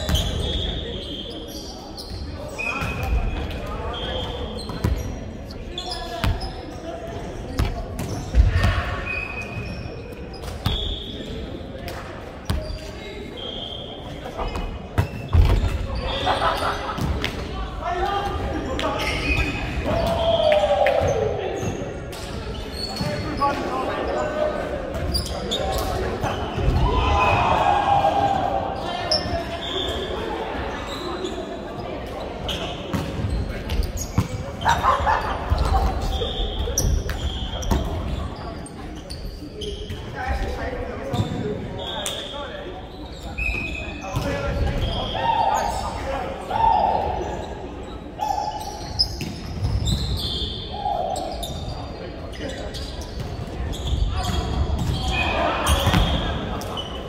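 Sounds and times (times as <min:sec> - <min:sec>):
shoe squeaks on wooden court: 0:00.0 - 0:17.4, 0:18.5 - 0:20.4, 0:21.0 - 0:27.4, 0:28.8 - 0:46.1, 0:47.2 - 0:57.0
players shouting: 0:17.9 - 0:21.7, 0:26.2 - 0:29.9.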